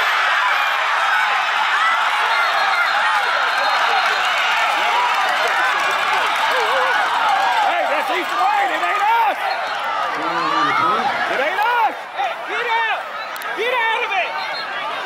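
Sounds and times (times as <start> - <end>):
crowd shouting and talking: 0.0 - 15.0.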